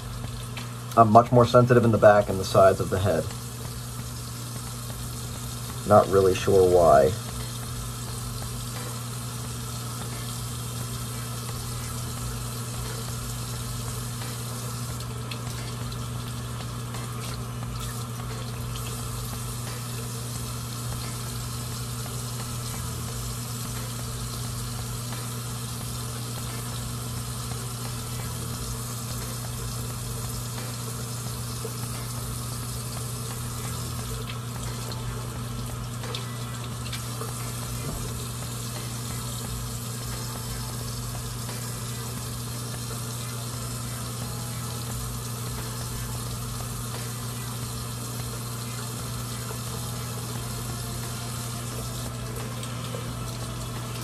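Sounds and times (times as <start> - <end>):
tap water running: 0.0 - 54.0.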